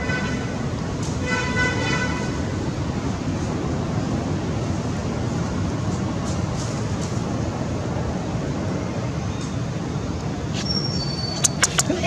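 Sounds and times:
vehicle horn tooting: 1.2 - 2.4
steady low rumble: 2.2 - 10.5.

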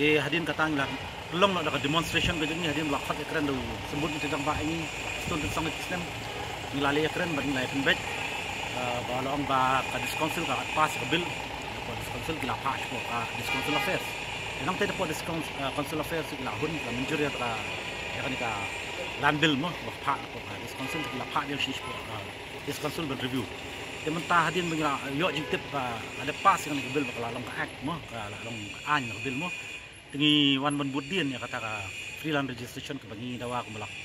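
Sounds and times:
man speaking: 0.0 - 8.1, 8.7 - 29.6, 30.2 - 33.9
street traffic hum: 0.0 - 34.0.

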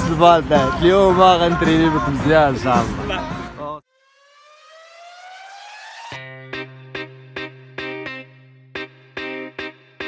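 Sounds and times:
music: 0.0 - 3.8, 6.0 - 10.0
rising synthetic tone: 3.9 - 7.8.

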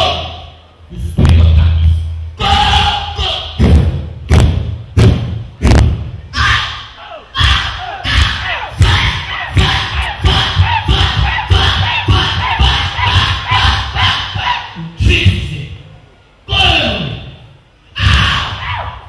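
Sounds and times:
man shouting into microphone: 0.0 - 1.7, 2.4 - 3.6, 6.4 - 15.8, 16.5 - 17.4
sharp knocks: 3.6 - 6.1
heavy thuds: 3.6 - 6.2.

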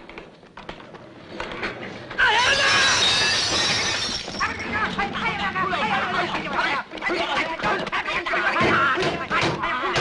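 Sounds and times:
dishes and glassware crashing: 2.6 - 4.4.

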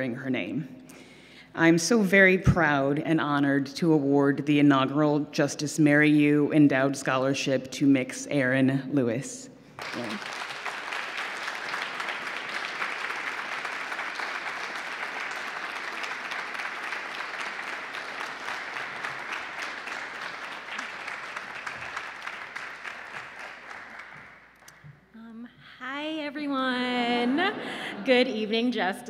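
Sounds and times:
audience applauding: 9.8 - 24.9.

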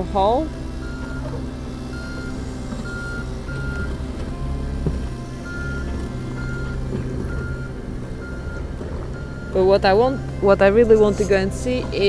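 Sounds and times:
diesel engine running: 0.0 - 12.0
travel alarm beeping: 0.8 - 12.0.

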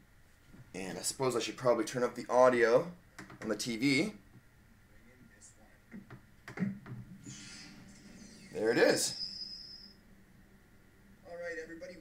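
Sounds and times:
faint video audio from tv: 0.0 - 12.0
low hum: 4.2 - 12.0.

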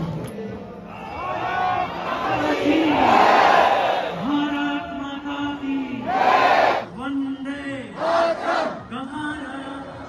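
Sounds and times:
crowd chanting and shouting: 0.0 - 10.0.

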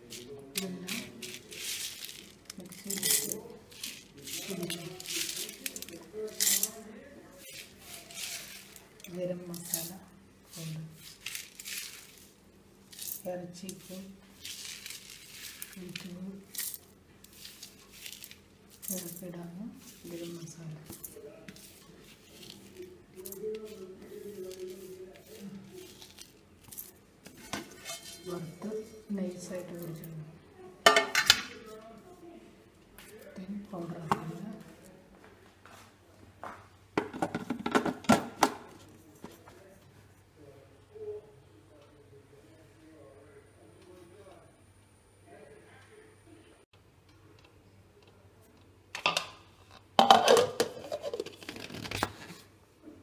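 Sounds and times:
spices rattling in steel jar: 0.6 - 6.8, 12.9 - 21.1.

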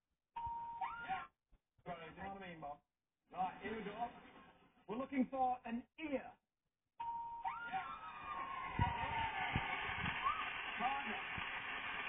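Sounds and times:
voices from television: 1.1 - 6.4, 7.6 - 12.0
crowd noise from television: 3.3 - 5.3, 7.5 - 12.0.

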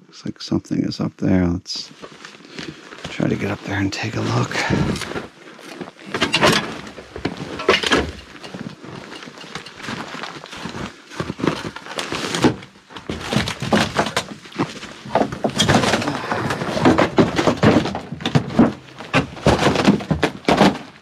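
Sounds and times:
branches rustling: 1.9 - 21.0
footsteps crunching in deep snow: 6.8 - 13.1.

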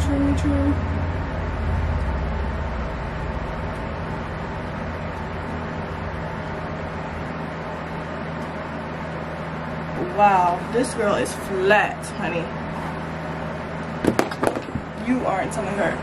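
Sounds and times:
deep low rumble: 0.0 - 7.8
steady mechanical hum: 0.0 - 16.0.

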